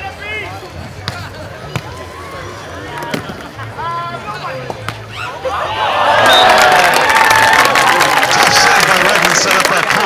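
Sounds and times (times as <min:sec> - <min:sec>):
crowd voices: 0:00.0 - 0:10.0
players shouting: 0:05.0 - 0:10.0.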